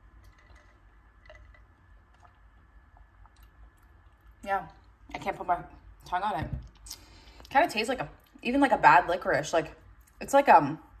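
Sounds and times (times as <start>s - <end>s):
low hum: 0.0s - 8.4s.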